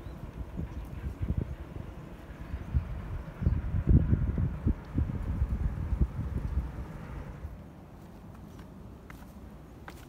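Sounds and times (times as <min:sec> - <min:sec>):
wind buffeting microphone: 0:00.0 - 0:07.7.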